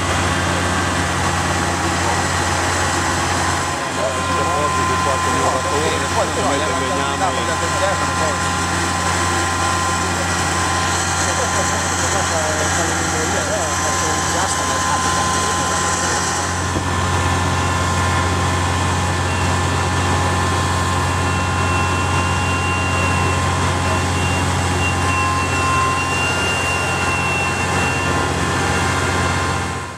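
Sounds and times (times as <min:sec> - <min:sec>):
fire truck pump engine drone: 0:00.0 - 0:29.9
thin steady whine: 0:00.0 - 0:29.9
voices: 0:00.2 - 0:17.2.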